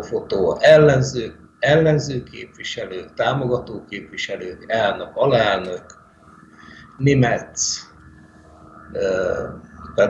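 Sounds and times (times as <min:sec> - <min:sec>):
man's drawn-out hesitation sound: 0:00.0 - 0:05.9, 0:06.8 - 0:07.9, 0:08.5 - 0:10.0.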